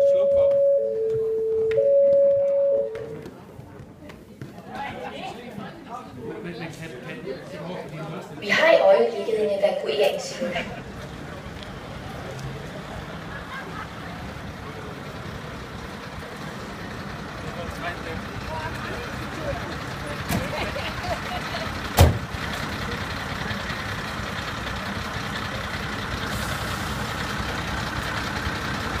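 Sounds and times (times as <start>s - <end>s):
fire engines idling: 0.0s - 4.3s, 5.0s - 29.0s.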